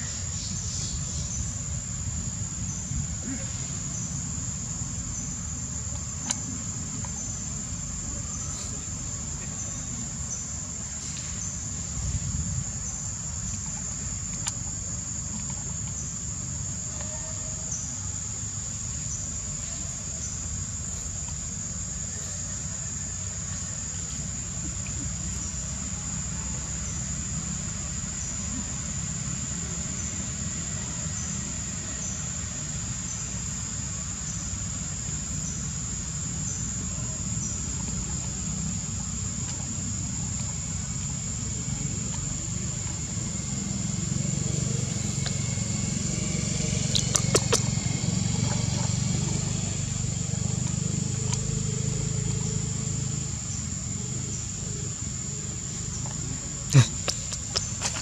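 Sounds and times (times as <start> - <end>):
low motor rumble: 0.0 - 58.0
sharp clicks: 46.9 - 47.7.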